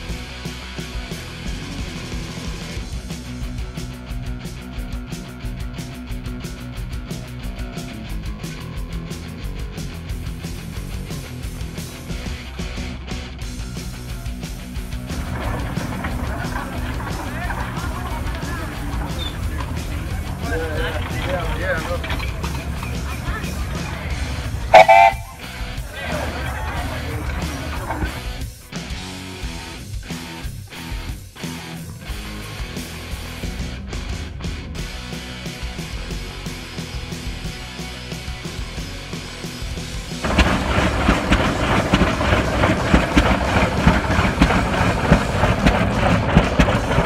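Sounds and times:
music: 0:00.0 - 0:47.0
guitar music: 0:12.2 - 0:33.9
tractor engine knocking: 0:13.6 - 0:28.6, 0:39.8 - 0:47.0
steam whistle blast: 0:24.6 - 0:25.6.

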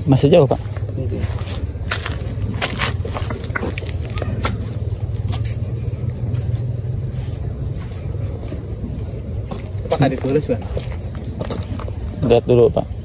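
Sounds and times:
low outdoor rumble: 0:00.0 - 0:13.0.

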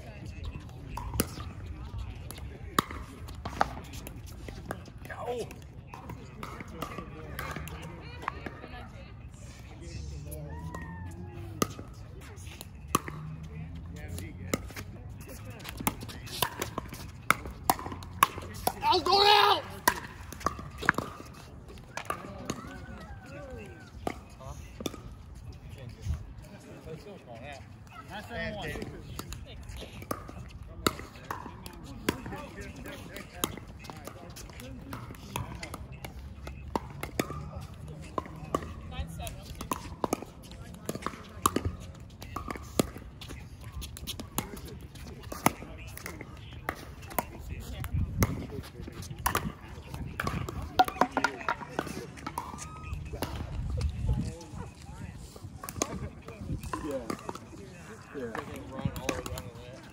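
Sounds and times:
faint voices: 0:00.0 - 0:59.9
paddles hitting plastic ball: 0:14.6 - 0:22.6, 0:48.2 - 0:53.6.

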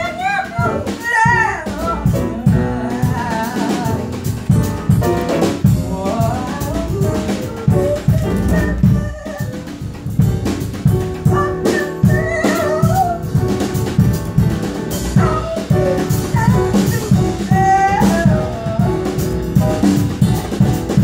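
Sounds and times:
man singing into microphone: 0:00.0 - 0:04.3, 0:05.6 - 0:09.6, 0:15.2 - 0:19.3
music with steady drum beat: 0:00.0 - 0:21.0.

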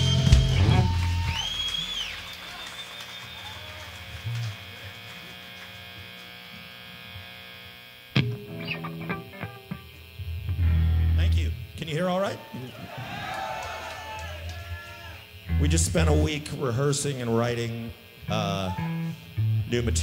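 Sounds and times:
rock band final chord and crash: 0:00.0 - 0:01.4
guitar amplifier hum: 0:00.0 - 0:20.0
electric guitar picked notes: 0:04.0 - 0:12.7, 0:15.1 - 0:20.0.

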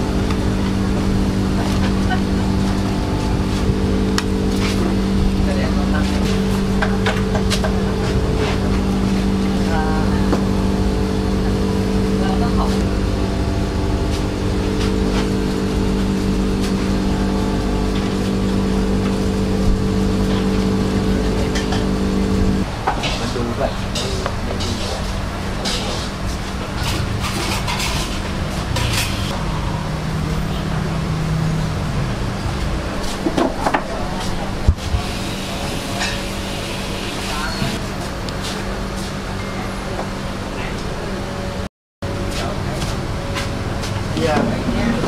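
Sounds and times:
constant noise bed: 0:00.0 - 0:45.0
steady machine hum: 0:00.0 - 0:45.0.

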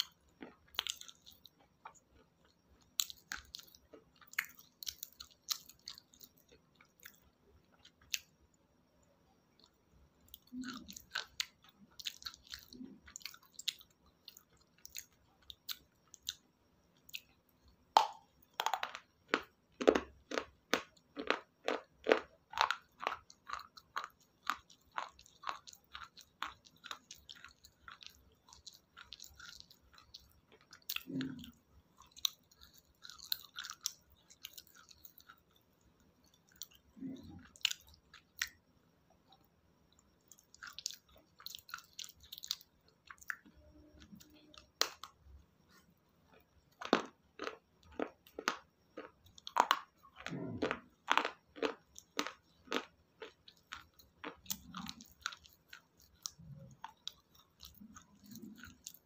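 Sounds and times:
crunchy chewing: 0:00.0 - 0:59.0.

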